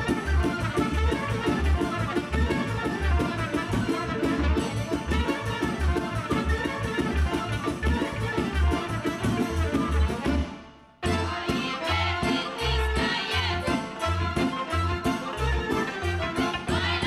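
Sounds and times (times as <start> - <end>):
folk dance music ensemble: 0.0 - 17.0.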